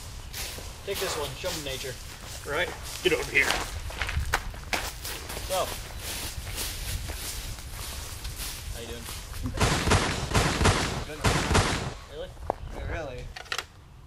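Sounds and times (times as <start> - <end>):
low wind rumble on microphone: 3.7 - 9.6.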